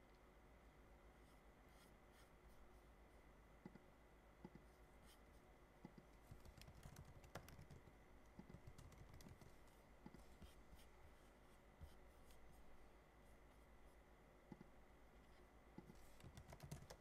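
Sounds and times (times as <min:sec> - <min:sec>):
keyboard and mouse clicks: 0:05.8 - 0:10.2, 0:15.8 - 0:17.0.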